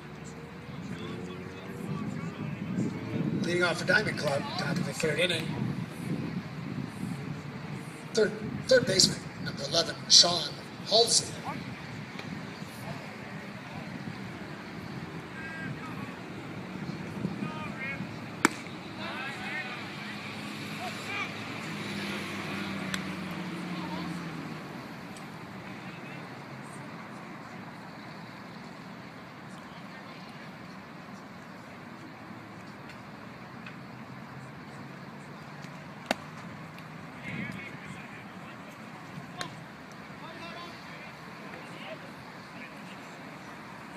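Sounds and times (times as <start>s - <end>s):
spectators chattering: 0.0s - 43.9s
voices calling out: 0.0s - 43.9s
sharp bat crack: 18.4s - 18.7s.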